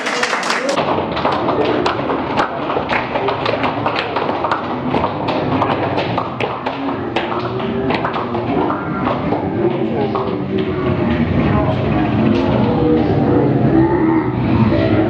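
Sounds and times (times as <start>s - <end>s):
hand clapping in rhythm: 0.0s - 11.0s
voices: 1.5s - 15.0s.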